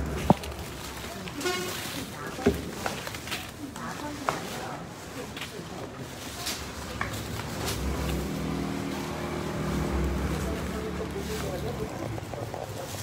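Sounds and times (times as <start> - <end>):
vehicle engine droning: 0.0 - 1.7, 6.5 - 13.0.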